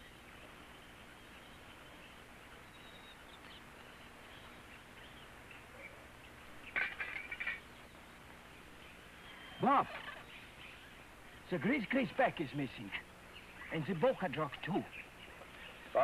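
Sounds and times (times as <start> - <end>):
bird calls: 0.0 - 11.8, 12.8 - 16.0
film soundtrack hiss: 0.0 - 16.0.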